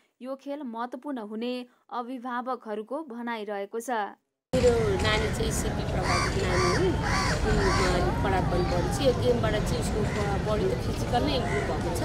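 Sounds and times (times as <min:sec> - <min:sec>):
crow cawing: 0:05.9 - 0:09.1, 0:09.9 - 0:10.5, 0:11.2 - 0:12.0.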